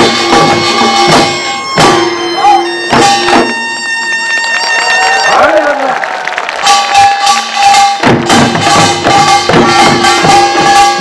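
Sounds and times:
deep drum beats: 0.0s - 3.6s, 6.7s - 11.0s
folk percussion band playing: 0.0s - 11.0s
held high tone: 0.2s - 5.9s.

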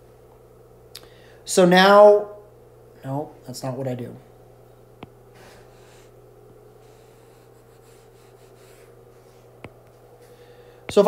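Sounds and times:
stylus rubbing on glass screen: 6.8s - 9.6s.

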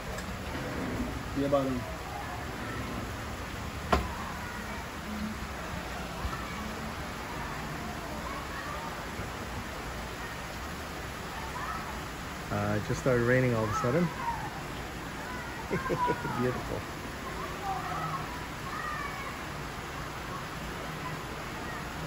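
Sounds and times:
steady rain hiss: 0.0s - 22.0s.

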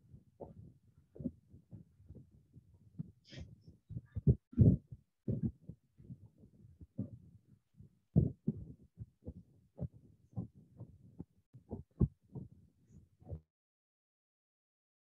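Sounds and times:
soft low thumps and knocks: 3.0s - 7.2s, 8.2s - 12.5s.

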